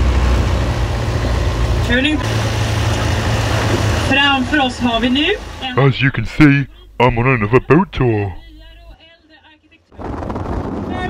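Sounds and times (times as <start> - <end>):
boat engine humming: 2.3 - 8.9
person saying a word: 5.8 - 8.7.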